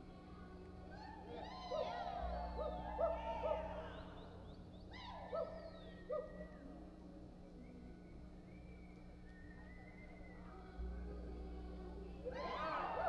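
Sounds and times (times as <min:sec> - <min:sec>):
spectators whooping and hollering: 0:00.9 - 0:05.7, 0:12.3 - 0:13.0
spectators whistling: 0:01.8 - 0:06.4, 0:07.6 - 0:10.7.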